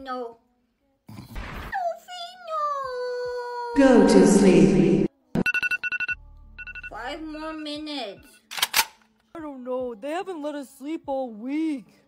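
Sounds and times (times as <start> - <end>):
electronic alarm beeping: 4.0 - 7.8.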